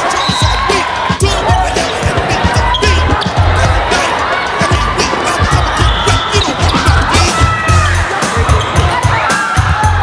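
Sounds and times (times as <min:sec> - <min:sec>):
music: 0:00.0 - 0:10.0
players shouting: 0:00.0 - 0:10.0
balls bouncing on court: 0:04.6 - 0:07.6.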